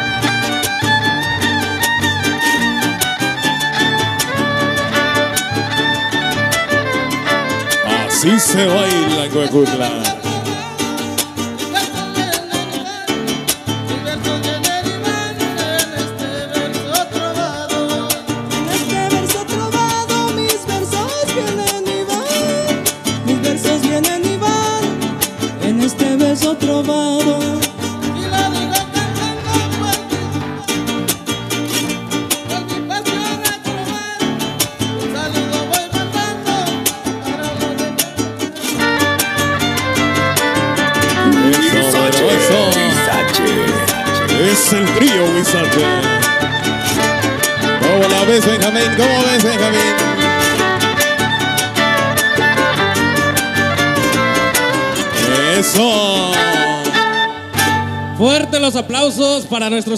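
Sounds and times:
violin melody with sliding notes: 0.0 - 16.6, 36.4 - 58.5
strummed guitars: 0.0 - 59.9.

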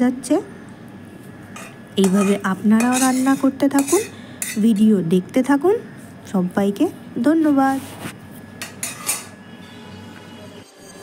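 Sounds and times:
spatula scraping a plate: 8.6 - 11.0.

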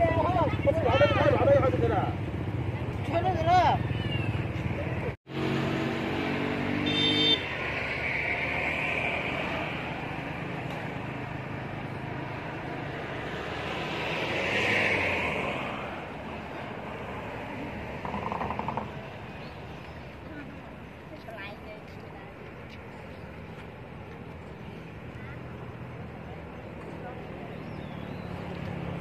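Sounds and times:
vehicle passing: 0.0 - 19.8, 24.9 - 29.0
road traffic: 0.0 - 29.0.

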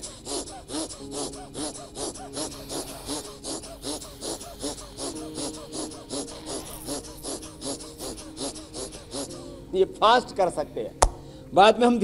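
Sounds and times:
rapid breathing through the nose: 0.0 - 9.7, 11.2 - 11.5.

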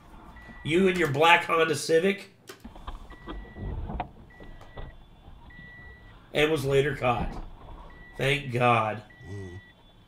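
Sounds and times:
vehicle warning chime beep: 0.3 - 1.0, 3.1 - 3.7, 4.3 - 10.0.

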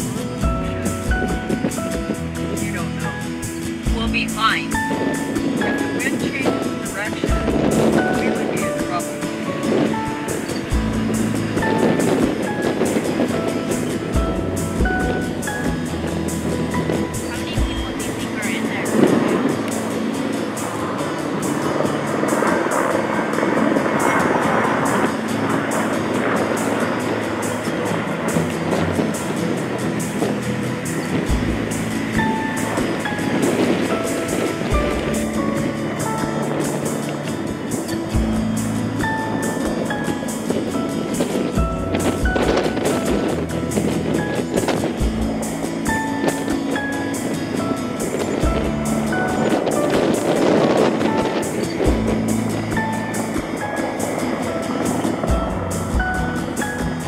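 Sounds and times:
background music melody: 0.0 - 57.0
steady rushing noise: 0.0 - 57.0.

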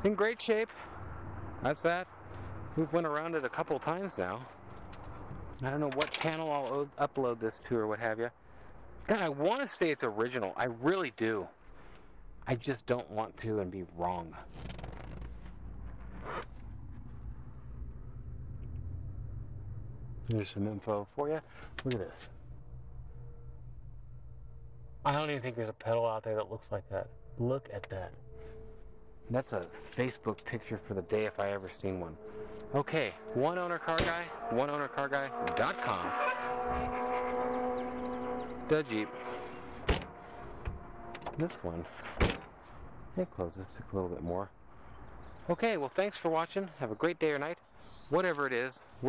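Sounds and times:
steady low rumble: 0.8 - 6.0, 11.4 - 34.3
faint steady hum: 14.9 - 33.1
rustling scraping handling noise: 29.6 - 30.5.

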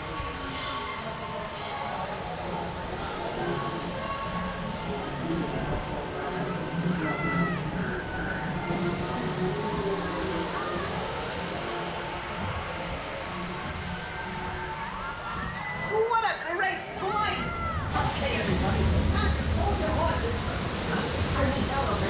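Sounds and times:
children's voices: 0.0 - 16.0
faint music: 0.0 - 22.0
low steady ride hum: 1.4 - 15.6, 16.8 - 22.0.

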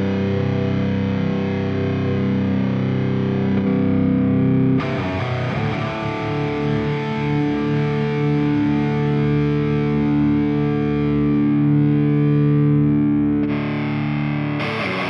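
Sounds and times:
distorted electric guitar chord: 0.0 - 15.0.

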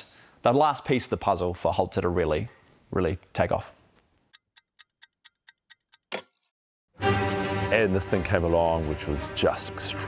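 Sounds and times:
clock-like ticking: 4.4 - 6.1.

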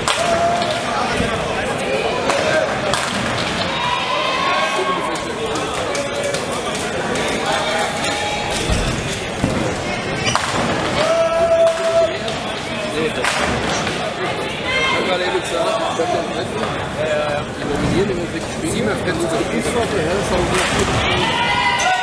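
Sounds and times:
spectator chatter: 0.0 - 22.0.

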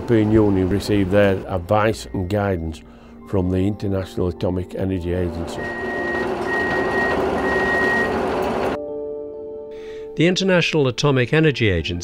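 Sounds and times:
soft music: 0.0 - 12.0
underground machinery humming: 5.4 - 8.8
electronic warning beeps: 5.6 - 8.7.

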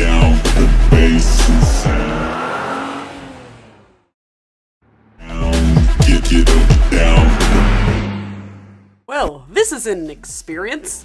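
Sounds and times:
music with heavy beat: 0.0 - 2.1, 5.3 - 7.9
vehicle engine accelerating: 0.0 - 4.2, 4.8 - 9.0.

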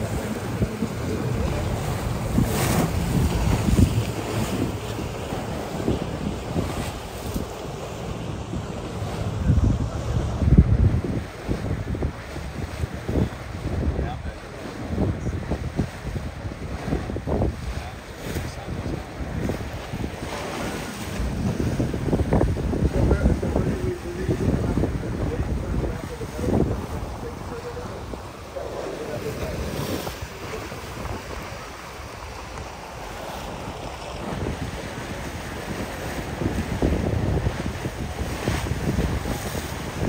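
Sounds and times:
water splashing along boat hull: 0.0 - 40.0
wind buffeting microphone: 0.0 - 40.0.

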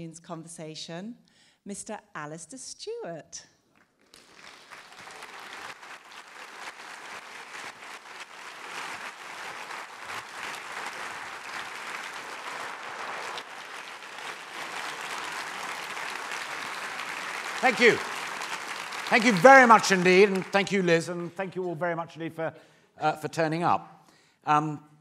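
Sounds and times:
audience applauding: 4.1 - 21.6.

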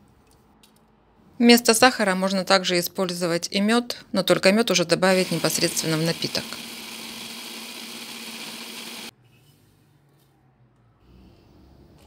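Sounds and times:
blender motor grinding: 5.1 - 9.1.

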